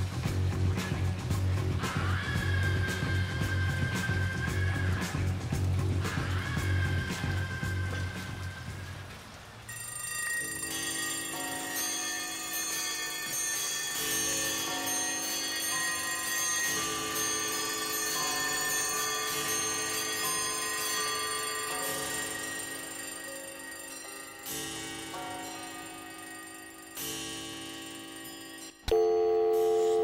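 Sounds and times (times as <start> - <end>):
bell-like chime tones: 9.7 - 30.0.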